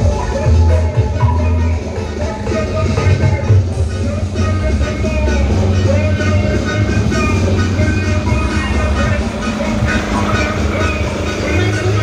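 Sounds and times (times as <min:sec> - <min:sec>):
loud bass-heavy music through speakers: 0:00.0 - 0:12.0.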